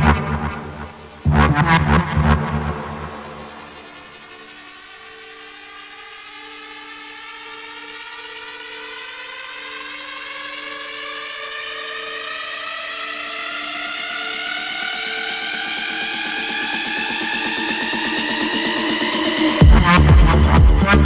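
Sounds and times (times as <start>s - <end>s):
held synth notes: 0.0s - 6.7s
synth riser sweeping upward: 0.0s - 7.9s
dance beat: 15.9s - 21.0s.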